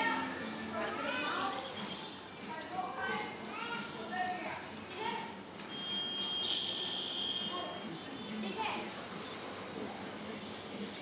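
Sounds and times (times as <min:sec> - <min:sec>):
high-pitched steady whistling tone: 0:00.0 - 0:02.2, 0:05.7 - 0:07.9.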